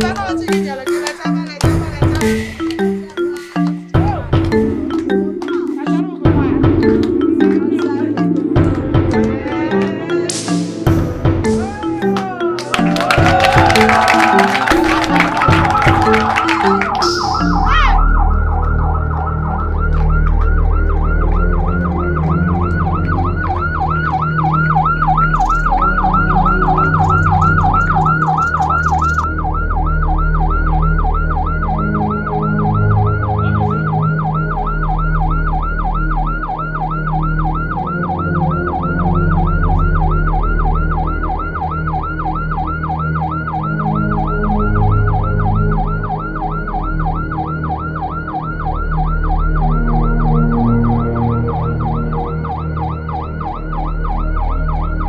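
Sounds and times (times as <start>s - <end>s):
siren yelping: 0.0s - 55.0s
low sustained notes: 4.2s - 11.5s.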